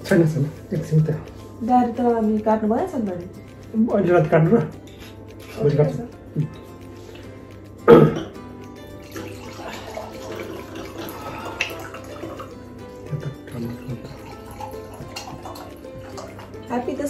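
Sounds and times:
background music: 0.0 - 17.0
wine pouring into glass: 8.2 - 16.7.

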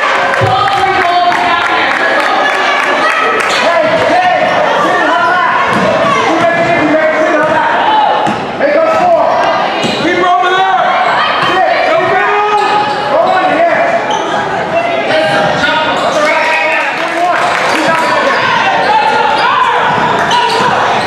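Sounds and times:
people calling out in hall: 0.0 - 21.0
basketball bouncing on gym floor: 5.7 - 6.8.

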